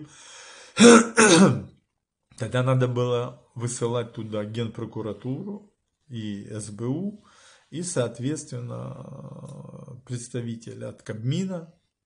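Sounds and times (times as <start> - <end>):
faint breath: 0.0 - 0.8, 7.2 - 7.7
man clearing his throat: 0.8 - 1.7.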